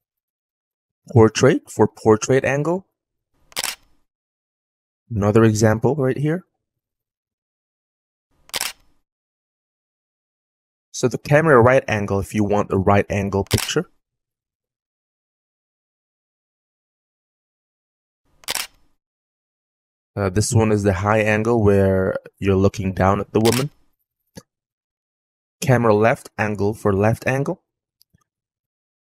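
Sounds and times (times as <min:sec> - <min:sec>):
camera shutter click: 0:03.5 - 0:03.9, 0:08.5 - 0:08.9, 0:13.4 - 0:13.8, 0:18.4 - 0:18.8, 0:23.4 - 0:23.8.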